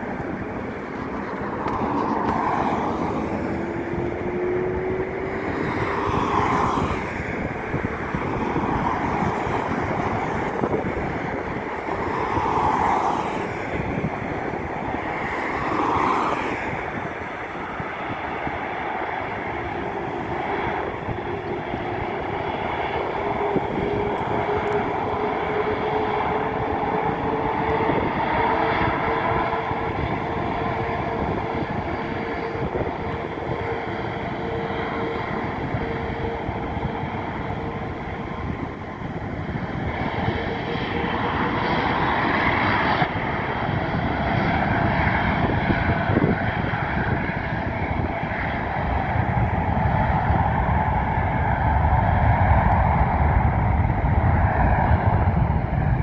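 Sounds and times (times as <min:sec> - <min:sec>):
jet engine rumble with whine: 0:00.0 - 0:56.0
road traffic passing: 0:00.0 - 0:56.0.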